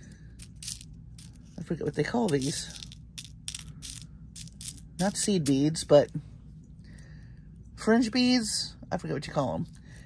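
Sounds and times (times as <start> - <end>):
glass beads clicking: 0.4 - 1.5, 2.2 - 6.1.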